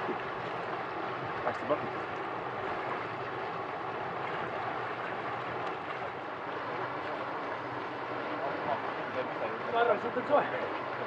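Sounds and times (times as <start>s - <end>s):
stream water rushing: 0.0s - 11.0s.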